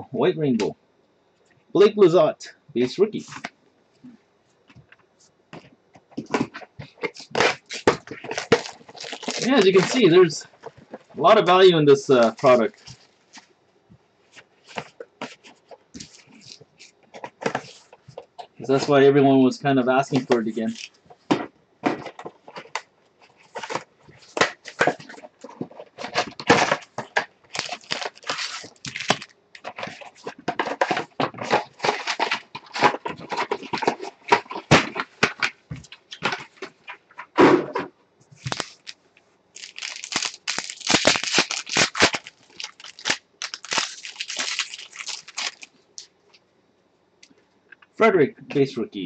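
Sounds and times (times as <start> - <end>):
foil packs crinkling: 6.3 - 13.1, 20.0 - 21.0, 21.9 - 37.0, 38.4 - 39.0, 39.6 - 46.1
cardboard box being opened: 23.4 - 36.7.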